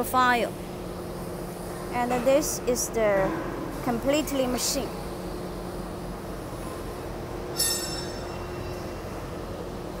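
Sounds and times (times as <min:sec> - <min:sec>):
machine line humming: 0:00.0 - 0:10.0.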